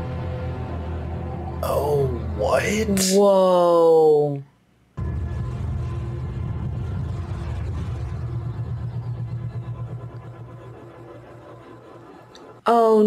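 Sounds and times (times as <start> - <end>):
starship engine drone: 0.0 - 4.2, 5.0 - 13.0.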